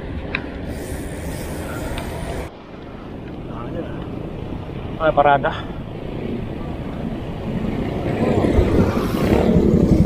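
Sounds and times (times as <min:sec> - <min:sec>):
low rumble of road and traffic: 0:00.0 - 0:10.0
wind buffeting microphone: 0:00.0 - 0:10.0
high hiss: 0:00.6 - 0:02.5.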